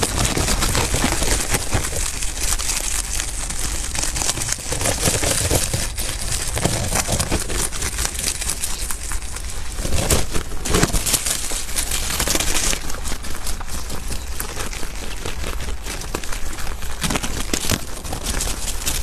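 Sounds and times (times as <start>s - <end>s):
leaves rustling: 0.0s - 19.0s
rabbit chewing hay: 0.0s - 19.0s.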